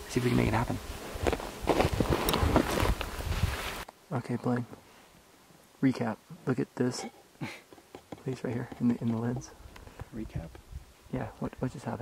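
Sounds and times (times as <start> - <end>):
footsteps in dry brush: 0.8 - 3.9.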